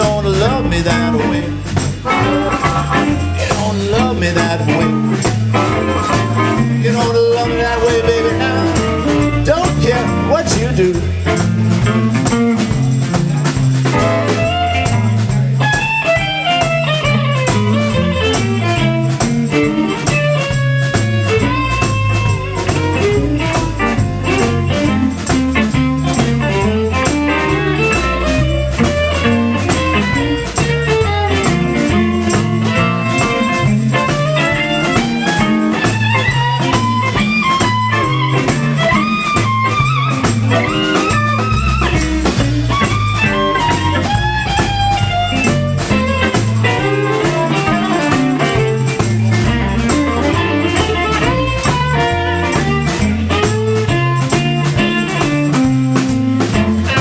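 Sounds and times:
blues band playing: 0:00.0 - 0:57.0
sliding lead guitar line: 0:00.0 - 0:57.0.

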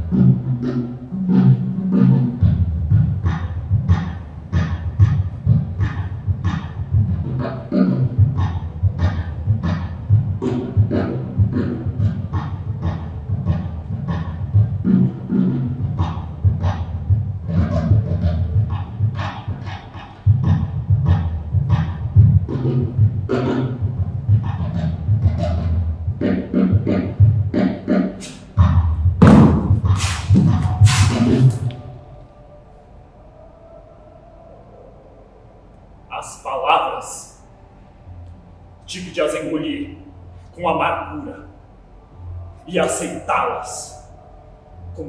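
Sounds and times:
deep low beat: 0:00.0 - 0:32.3
hand-struck percussion: 0:29.2 - 0:31.7.

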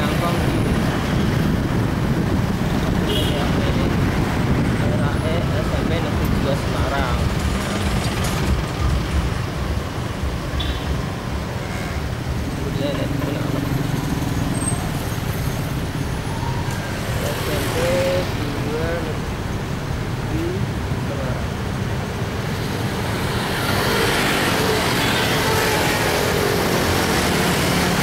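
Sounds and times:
traffic rumble and road noise: 0:00.0 - 0:28.0.

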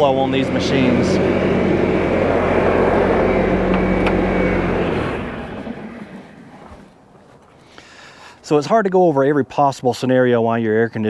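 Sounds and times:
diesel engine running: 0:00.0 - 0:07.0.

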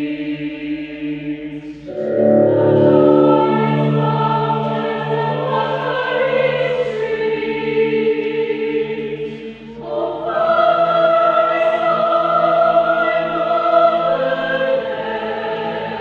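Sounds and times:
choir singing held chords: 0:00.0 - 0:16.0.

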